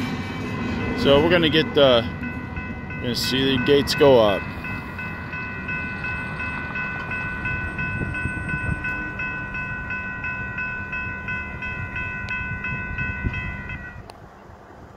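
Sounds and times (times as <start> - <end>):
electronic crossing bells ringing: 0.6 - 14.0.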